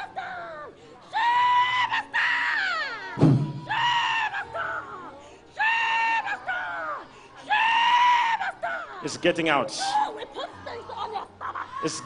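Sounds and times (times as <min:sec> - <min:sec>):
woman screaming: 0:01.1 - 0:09.0
low thump: 0:03.2 - 0:03.6.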